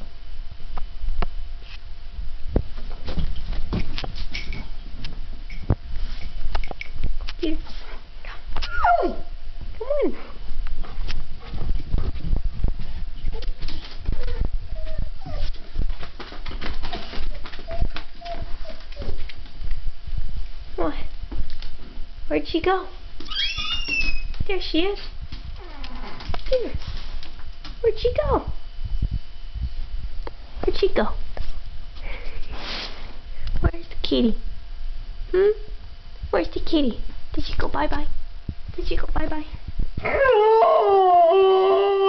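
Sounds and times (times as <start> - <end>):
dog whining: 8.6 - 9.3, 14.1 - 15.7, 17.3 - 19.2, 23.3 - 24.3, 25.6 - 26.3, 40.0 - 42.0
running footsteps: 10.6 - 19.8.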